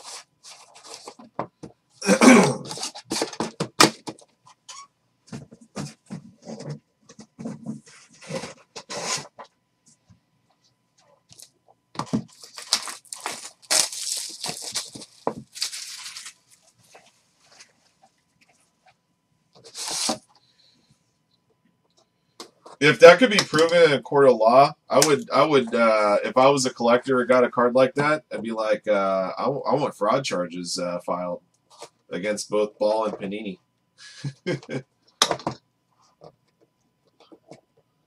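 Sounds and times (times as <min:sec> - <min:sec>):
man clearing his throat: 0:02.0 - 0:02.8
plastic rustling: 0:11.3 - 0:18.0
plastic wrap crinkling and tearing: 0:12.2 - 0:16.5.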